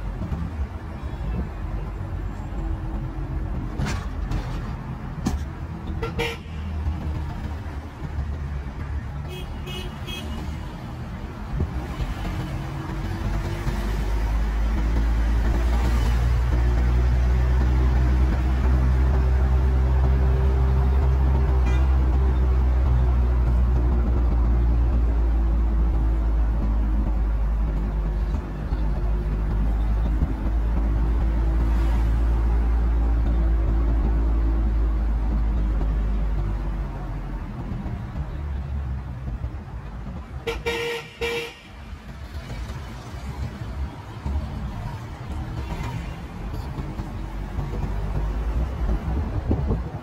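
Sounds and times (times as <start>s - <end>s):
low engine hum: 10.8s - 40.4s
car horn toots: 21.6s - 22.0s, 40.5s - 41.7s.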